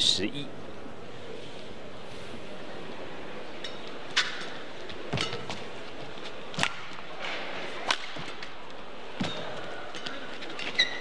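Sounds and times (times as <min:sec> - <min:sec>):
low arena background noise: 0:00.0 - 0:11.0.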